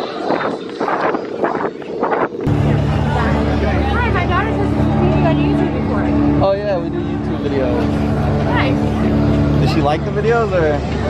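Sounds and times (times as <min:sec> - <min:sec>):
voices: 0:00.0 - 0:11.0
low motor-like hum: 0:02.2 - 0:11.0.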